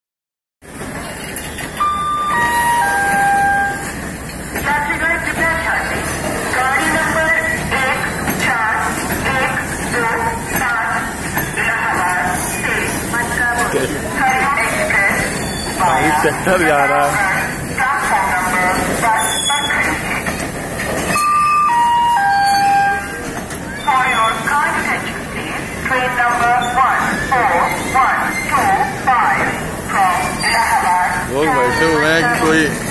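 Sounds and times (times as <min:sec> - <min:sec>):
train background noise: 0:00.6 - 0:32.9.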